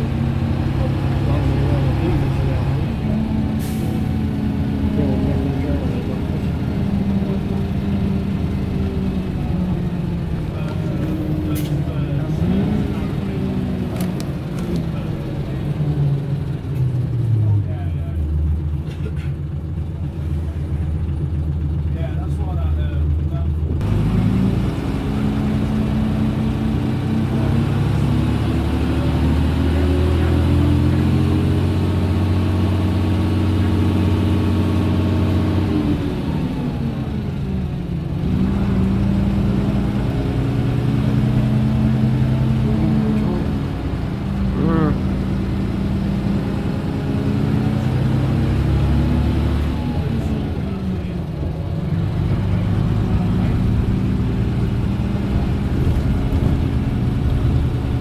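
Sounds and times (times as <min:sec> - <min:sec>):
bus diesel engine: 0:00.0 - 0:58.0.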